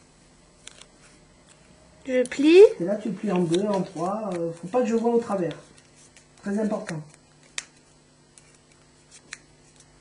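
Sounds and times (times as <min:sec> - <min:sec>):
paper being folded: 0:03.0 - 0:10.0.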